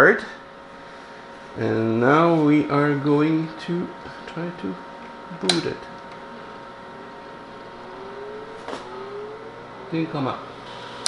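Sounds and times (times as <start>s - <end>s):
cooling fan spinning up: 0.0s - 11.0s
electronic whine: 6.0s - 11.0s.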